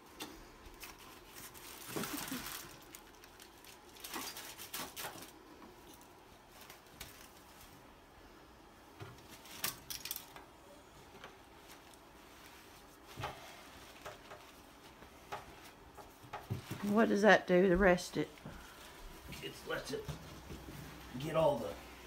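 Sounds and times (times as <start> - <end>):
foil crinkling: 0.7 - 7.8
fabric rustling: 11.1 - 22.0.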